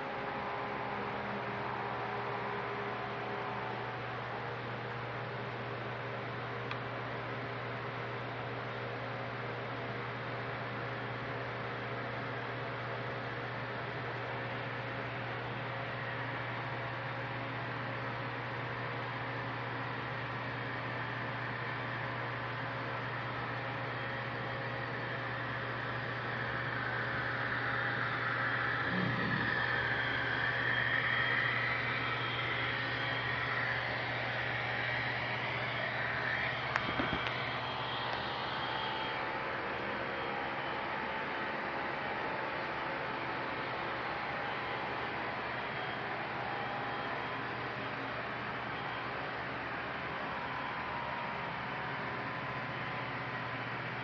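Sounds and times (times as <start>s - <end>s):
steady hum and hiss: 0.0s - 54.0s.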